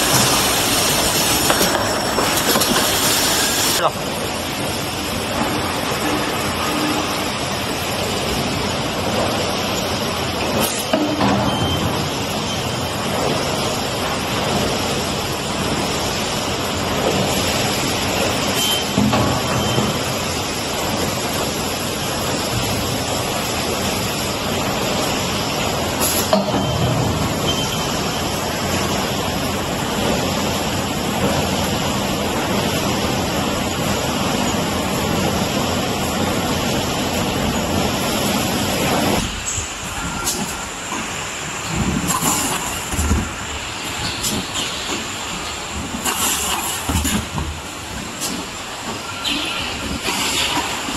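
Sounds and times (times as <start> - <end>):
mechanical knocks and clatter: 0.0 - 3.4, 16.9 - 24.8, 40.0 - 50.9
conveyors and pneumatic machinery: 0.0 - 50.9.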